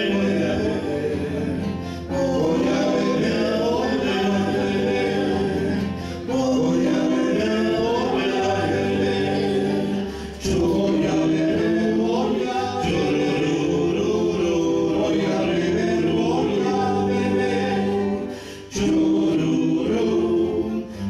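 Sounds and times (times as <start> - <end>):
acoustic guitars: 0.0 - 21.0
men singing together: 0.0 - 21.0.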